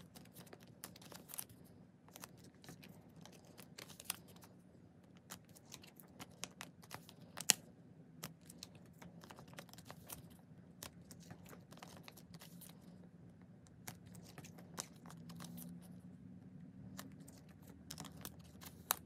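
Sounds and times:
plastic sleeves clicking and crinkling: 0:00.0 - 0:13.0, 0:13.7 - 0:15.8, 0:17.0 - 0:19.0.

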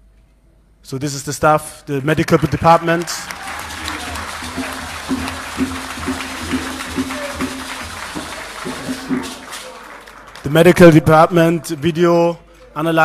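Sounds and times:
crowd applauding: 0:02.2 - 0:11.2.

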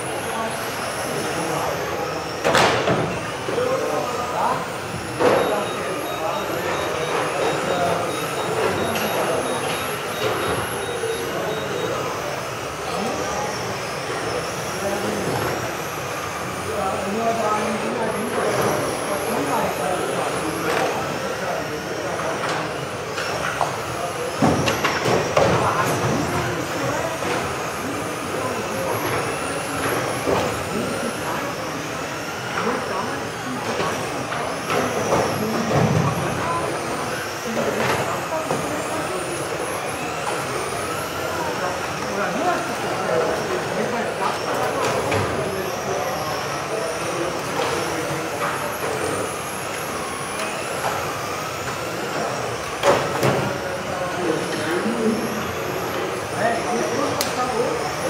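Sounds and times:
model car motors whining: 0:00.0 - 0:58.0
voices: 0:00.0 - 0:58.0.

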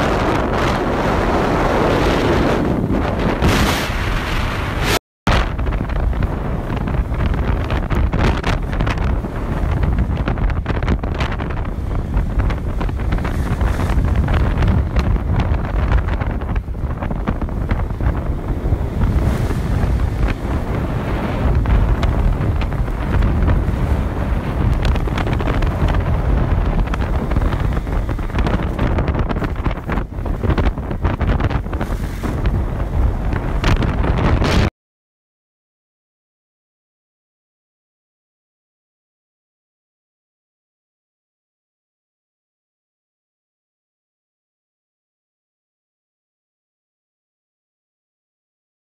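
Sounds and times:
wind buffeting microphone: 0:00.0 - 0:34.7.

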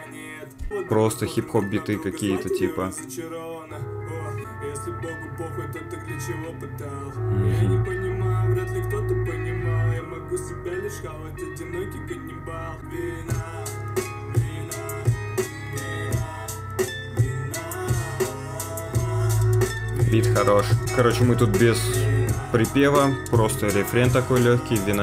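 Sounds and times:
rap beat with guitar and bass: 0:00.0 - 0:25.0.

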